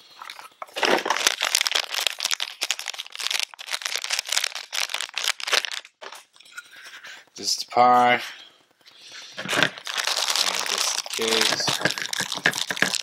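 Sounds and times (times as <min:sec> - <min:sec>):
plastic bag crinkling: 0:00.2 - 0:06.2, 0:09.5 - 0:13.0.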